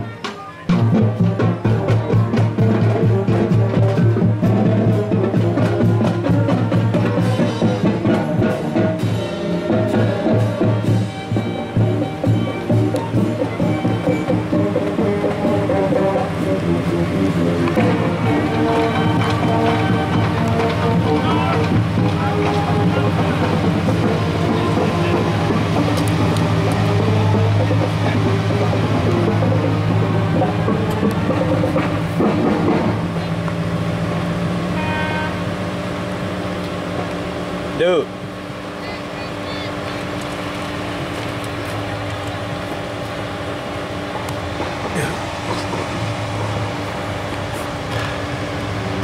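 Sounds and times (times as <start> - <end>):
background music: 0.0 - 33.4
indistinct voices: 0.0 - 33.8, 37.7 - 49.0
vehicle engines rolling past: 0.0 - 49.0.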